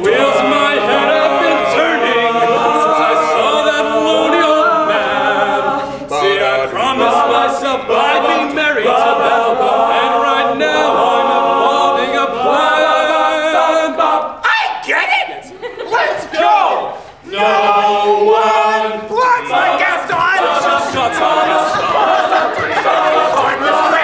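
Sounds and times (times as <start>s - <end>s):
male a cappella singing: 0.0s - 14.4s, 17.2s - 24.0s.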